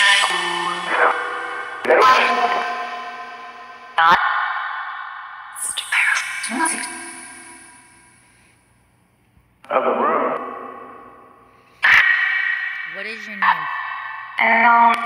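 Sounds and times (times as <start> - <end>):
echoing chopped voice fragments: 0.0 - 4.4, 5.6 - 7.8, 11.8 - 15.0.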